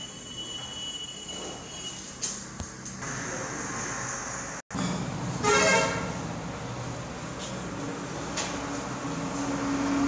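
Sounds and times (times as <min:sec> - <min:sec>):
vehicle horn honk: 0:05.4 - 0:06.1.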